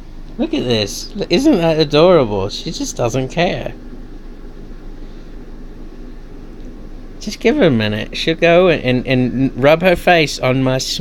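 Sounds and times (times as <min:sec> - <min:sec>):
faint background hiss: 0:00.0 - 0:11.0
steady low hum: 0:00.0 - 0:11.0.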